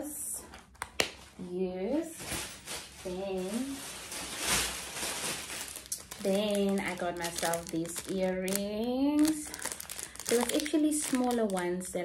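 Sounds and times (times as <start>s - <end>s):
plastic bag rustling: 2.1s - 12.0s.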